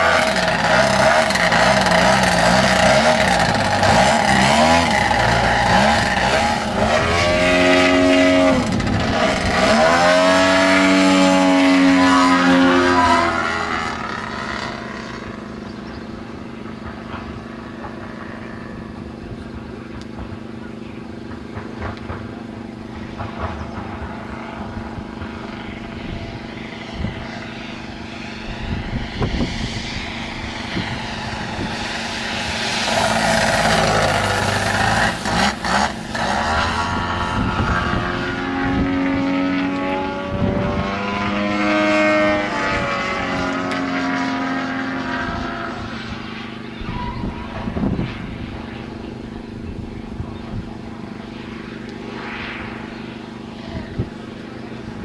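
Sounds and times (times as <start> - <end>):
model plane engine in flight: 0.0 - 55.0.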